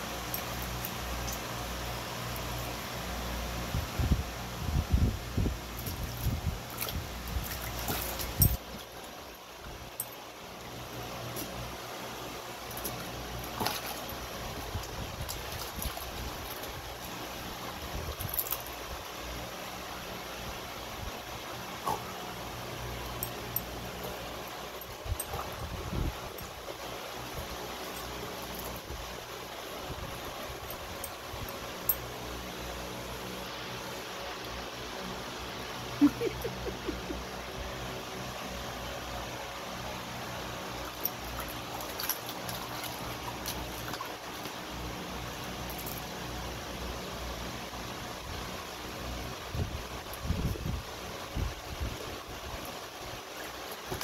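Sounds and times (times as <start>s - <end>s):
electric fan whirring: 0.0s - 54.0s
dog splashing in water: 5.8s - 8.4s.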